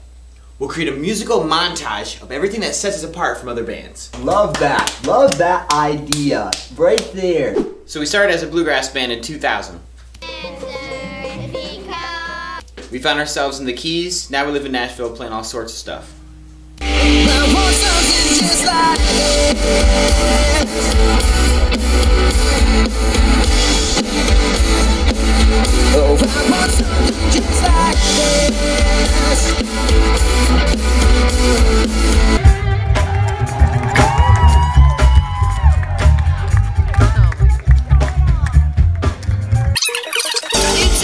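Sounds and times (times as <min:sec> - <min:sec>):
pop-rock band music: 0:10.2 - 0:12.6, 0:16.8 - 0:39.7, 0:40.6 - 0:41.0
song with singing voice: 0:10.2 - 0:12.6, 0:16.8 - 0:31.8, 0:40.4 - 0:41.0.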